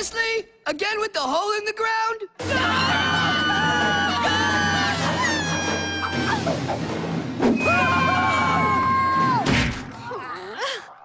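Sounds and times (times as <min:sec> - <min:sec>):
cartoon children screaming: 0:02.4 - 0:06.5, 0:07.6 - 0:10.9
background music: 0:02.4 - 0:11.0.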